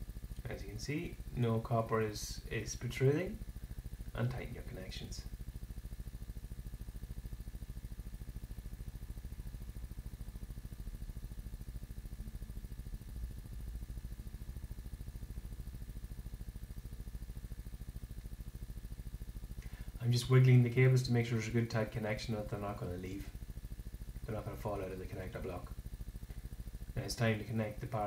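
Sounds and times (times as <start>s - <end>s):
electrical hum: 0.0s - 28.0s
faint buzz: 0.0s - 28.0s.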